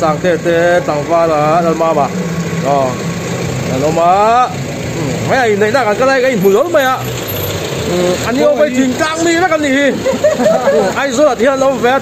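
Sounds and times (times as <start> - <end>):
men talking: 0.0 - 12.0
vehicle engine idling: 0.0 - 12.0.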